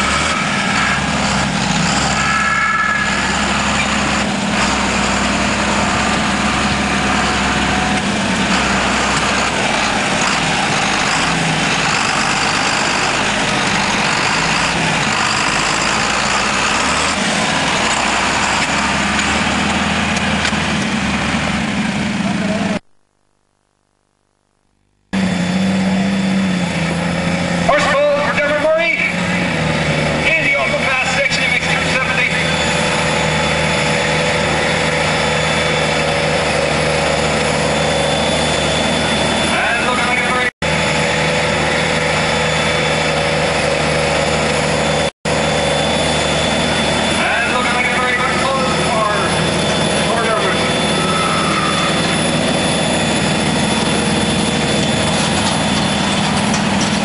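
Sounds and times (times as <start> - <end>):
tractor diesel engines under load: 0.0 - 23.2, 25.0 - 57.0.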